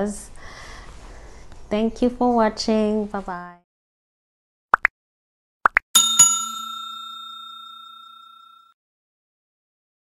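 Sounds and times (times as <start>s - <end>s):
notification bell ding: 6.0s - 8.7s.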